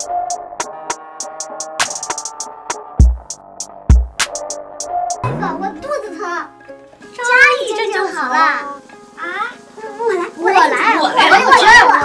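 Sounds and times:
light background music: 0.0s - 12.0s
people talking: 5.2s - 6.6s, 7.2s - 12.0s.

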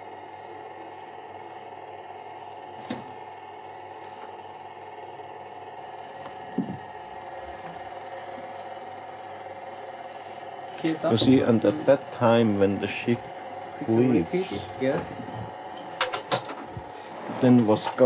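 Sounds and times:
mechanical hum with hiss: 0.0s - 18.0s.

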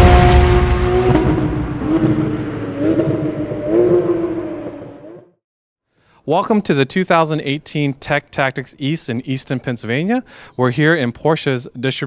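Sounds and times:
car engine revving: 0.0s - 5.2s.

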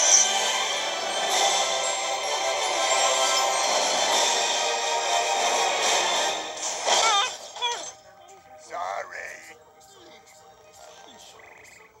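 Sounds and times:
film music: 0.0s - 12.0s.

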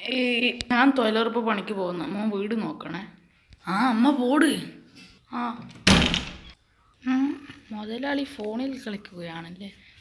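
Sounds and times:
wooden door slamming: 5.7s - 6.5s.

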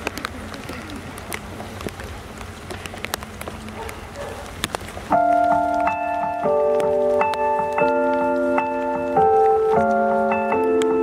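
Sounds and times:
crowd murmur: 0.0s - 5.1s
synthesizer keyboard chord: 5.1s - 11.0s.

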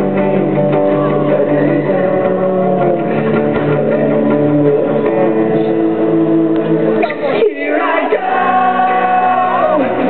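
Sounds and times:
acoustic guitar strumming: 0.0s - 10.0s
audience singing along: 6.6s - 10.0s
many voices singing together: 7.1s - 10.0s.

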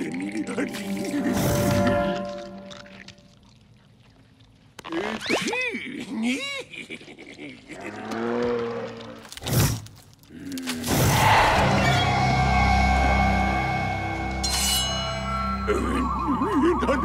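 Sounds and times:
held musical chord: 11.7s - 17.0s.

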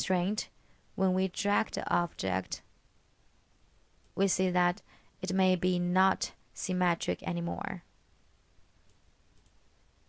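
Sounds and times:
computer mouse clicks: 8.8s - 9.6s.

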